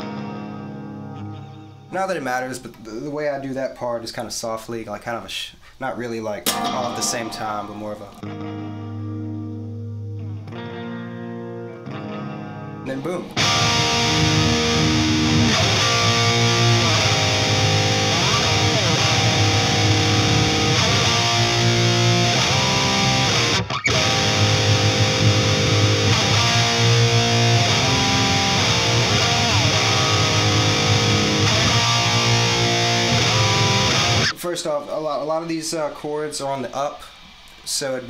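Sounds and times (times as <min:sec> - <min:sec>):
electric guitar heavy chords: 0:00.0 - 0:01.9, 0:06.5 - 0:34.4.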